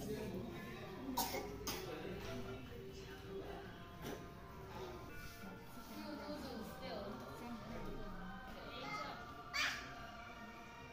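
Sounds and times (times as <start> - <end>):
background music: 0.0 - 10.9.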